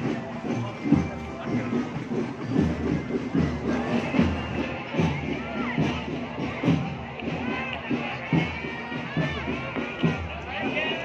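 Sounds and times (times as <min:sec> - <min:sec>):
parade music with drumbeat: 0:00.0 - 0:11.0
street crowd noise: 0:00.0 - 0:11.0.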